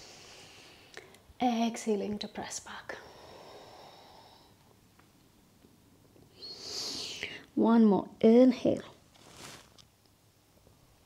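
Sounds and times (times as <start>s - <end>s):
woman breathing in: 3.0s - 4.6s
woman speaking: 7.6s - 9.0s.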